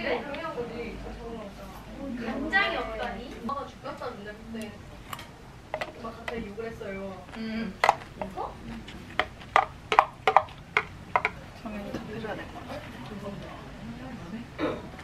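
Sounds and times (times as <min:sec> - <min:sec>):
quiet voices talking: 0:00.0 - 0:09.3
spoon clicking on plastic container: 0:09.2 - 0:11.4.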